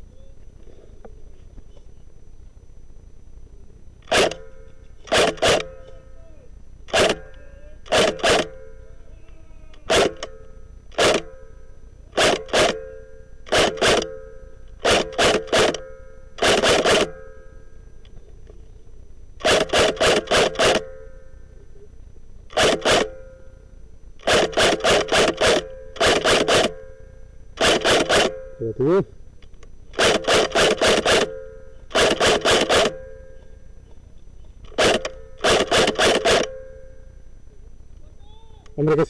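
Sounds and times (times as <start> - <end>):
airsoft rifle shots: 4.0 - 6.0, 6.9 - 8.8, 9.9 - 17.3, 19.4 - 21.0, 22.5 - 23.3, 24.2 - 26.9, 27.6 - 28.5, 29.9 - 33.2, 34.6 - 36.6.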